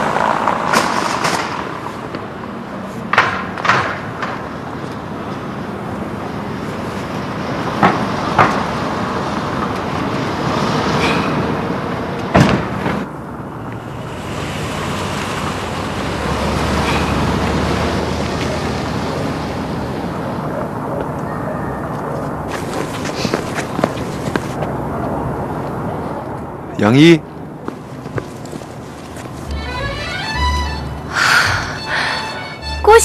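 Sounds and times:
road traffic passing: 0:00.0 - 0:33.0.

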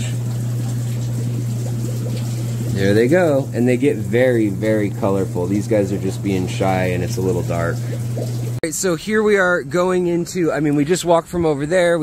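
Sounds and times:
water trickling and splashing: 0:00.0 - 0:08.6
water pumps humming: 0:00.0 - 0:12.0.

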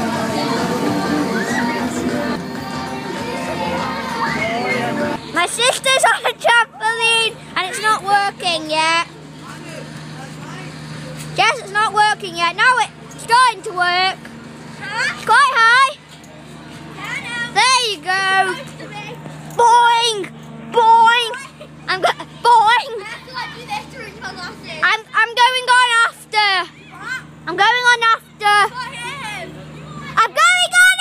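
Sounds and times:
children calling and chattering: 0:00.0 - 0:31.0
low motor hum: 0:00.0 - 0:31.0.

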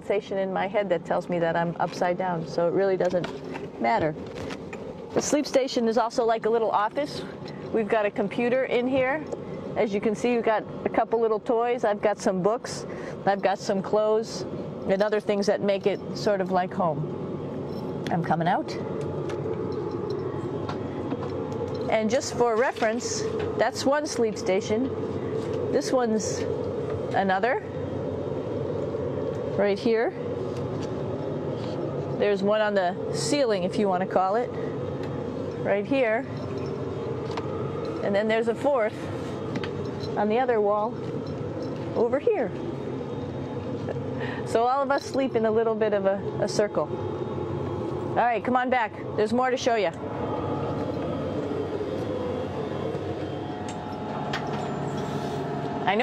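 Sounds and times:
ventilation fans whirring: 0:00.0 - 0:56.0.

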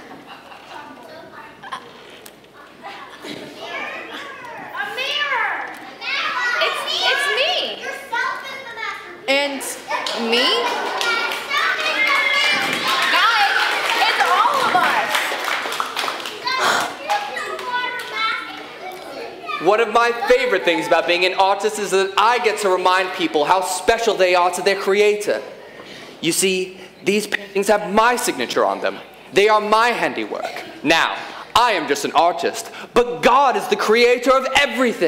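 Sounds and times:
young voices talking and exclaiming: 0:00.0 - 0:26.6.

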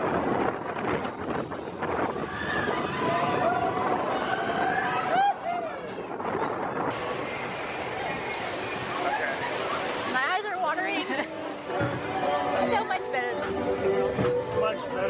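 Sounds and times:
roller coaster train rushing: 0:00.0 - 0:12.8
riders screaming and whooping: 0:02.1 - 0:06.1, 0:07.5 - 0:10.1.

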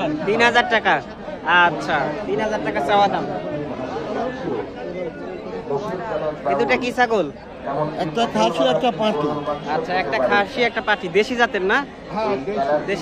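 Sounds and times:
crowd of people talking: 0:00.0 - 0:13.0.

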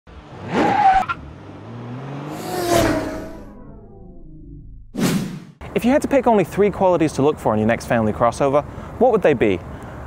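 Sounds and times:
engine rev: 0:00.1 - 0:05.0
low hum: 0:02.4 - 0:05.2.

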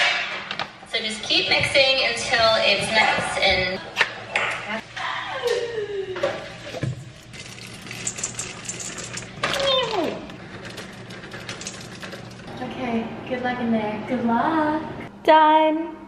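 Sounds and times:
chocolate chips clicking into bowl: 0:07.4 - 0:10.1.

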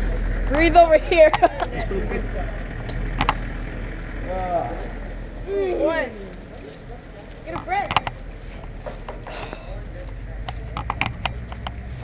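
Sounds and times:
steady low rumble: 0:00.0 - 0:12.0
sharp clicks: 0:10.4 - 0:11.9.

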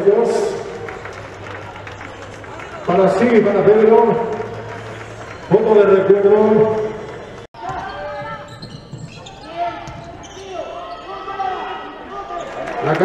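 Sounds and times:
basketball bouncing on court: 0:06.7 - 0:10.4.

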